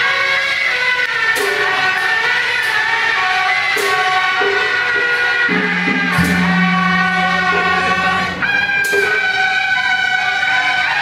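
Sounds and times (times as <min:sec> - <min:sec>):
suona holding high note: 0:05.5 - 0:10.0.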